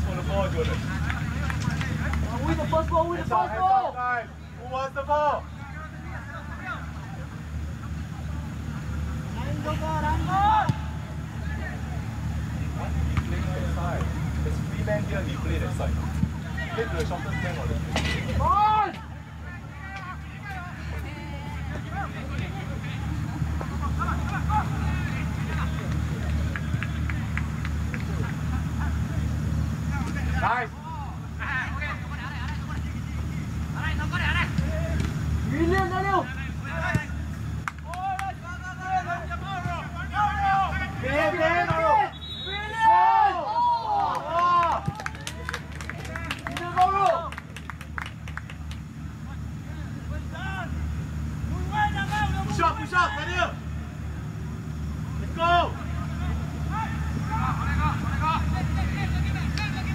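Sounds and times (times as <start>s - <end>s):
players shouting: 0.0s - 47.6s, 48.8s - 59.9s.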